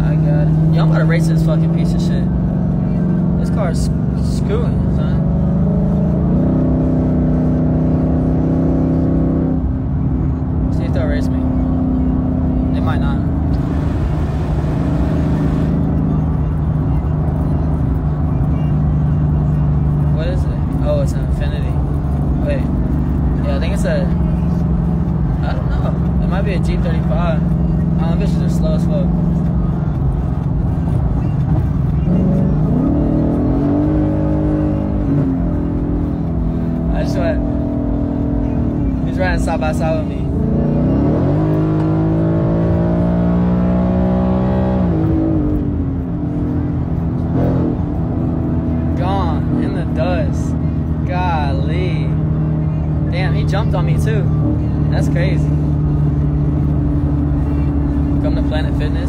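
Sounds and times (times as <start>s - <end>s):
car engine accelerating: 0.0s - 59.0s
road noise inside car: 0.0s - 59.0s.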